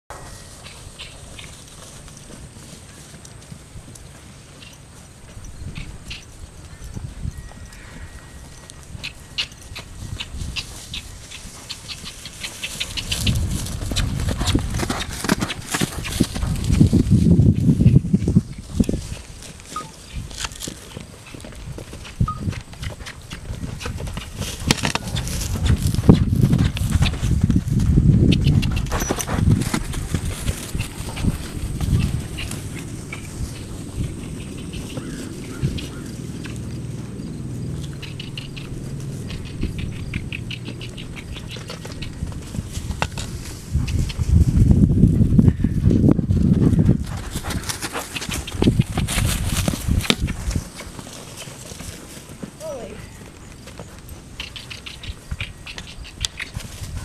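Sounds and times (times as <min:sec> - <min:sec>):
grass rustling: 0:00.1 - 0:57.0
hoofbeats thudding: 0:00.1 - 0:57.0.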